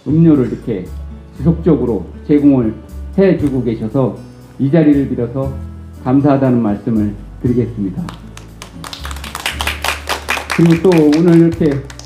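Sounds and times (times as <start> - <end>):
quiet background music: 0.0 - 12.0
people clapping: 8.0 - 12.0.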